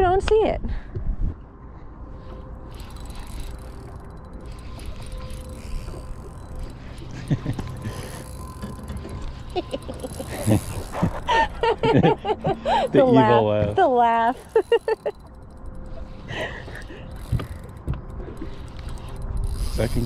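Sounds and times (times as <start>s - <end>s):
wind: 0.0s - 20.0s
fishing reel whirring and ticking: 2.3s - 20.0s
water noise: 2.6s - 12.9s
person laughing: 7.2s - 8.2s, 9.5s - 13.1s, 14.4s - 15.2s.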